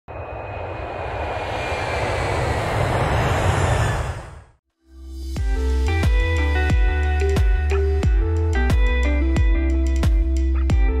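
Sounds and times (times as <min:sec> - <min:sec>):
jet engines roaring: 0:00.1 - 0:04.6.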